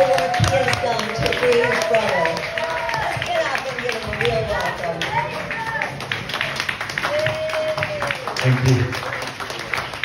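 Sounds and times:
audience clapping: 0.0s - 10.0s.

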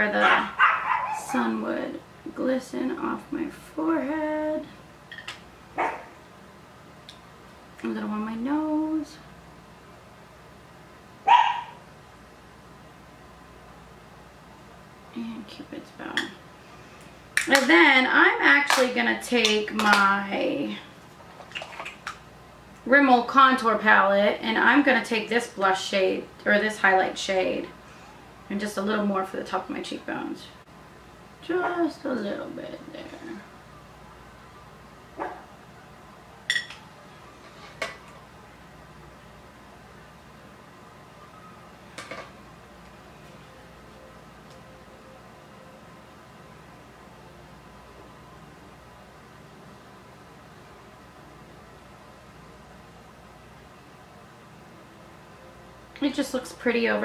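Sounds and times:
dog barking: 0.2s - 1.3s, 5.8s - 6.1s, 11.3s - 11.8s, 35.2s - 35.5s.

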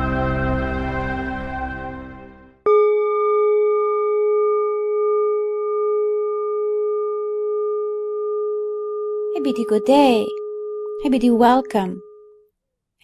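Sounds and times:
sustained bell tone: 2.7s - 12.5s.

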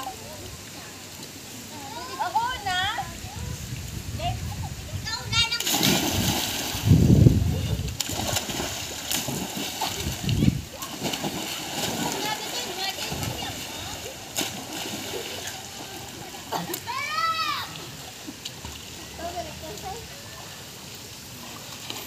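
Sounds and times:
water sloshing: 0.0s - 20.1s
splashes into pool: 5.4s - 17.9s
children shouting: 16.6s - 17.8s.

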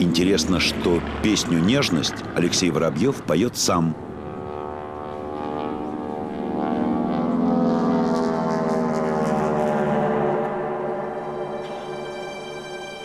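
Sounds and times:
propeller aircraft engine droning: 0.0s - 13.0s.

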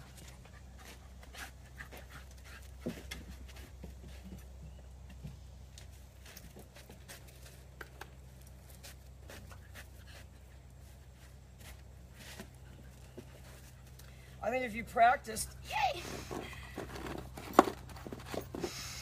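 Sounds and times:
puppy panting: 0.0s - 3.8s
steady low hum: 0.0s - 19.0s.

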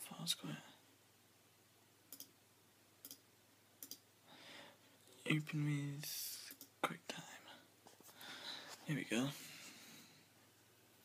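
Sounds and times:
soft breath: 4.2s - 5.0s, 7.4s - 10.4s.

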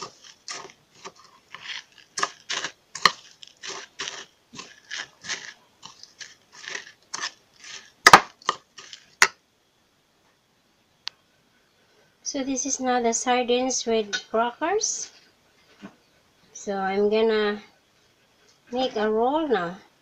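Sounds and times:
metal scraping in ceramic bowl: 0.0s - 9.3s.

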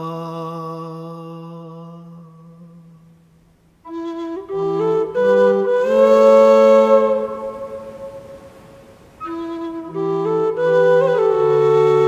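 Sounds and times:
low whistle and keyboard note: 3.9s - 8.6s.

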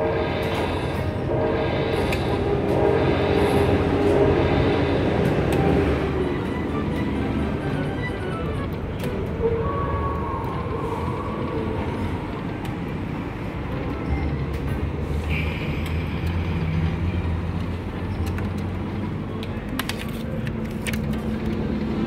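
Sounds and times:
low rumble of gaming room: 0.0s - 22.0s.

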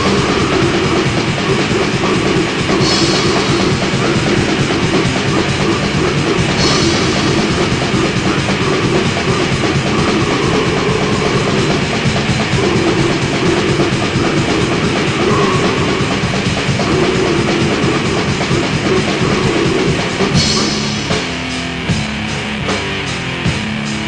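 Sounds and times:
distorted metal guitars: 0.0s - 24.0s
fast dense drumming: 0.0s - 24.0s.

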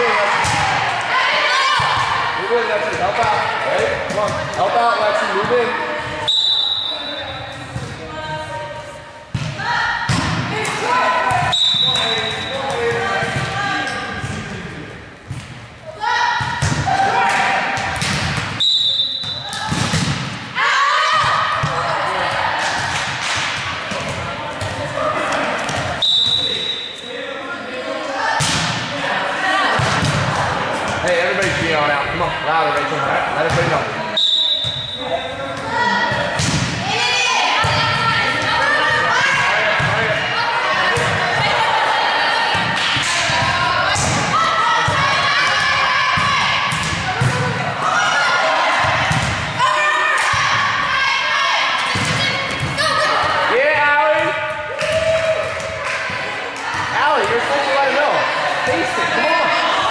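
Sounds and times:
echoing talk and calls: 0.0s - 59.9s
volleyball slaps: 0.2s - 1.2s, 9.3s - 14.4s, 16.4s - 26.5s, 28.4s - 29.0s, 29.7s - 31.8s, 34.5s - 37.0s, 42.5s - 51.0s, 51.6s - 57.4s.

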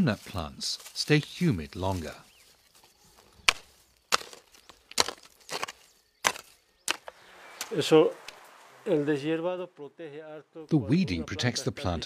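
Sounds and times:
hoe chopping into soil: 3.4s - 7.8s.

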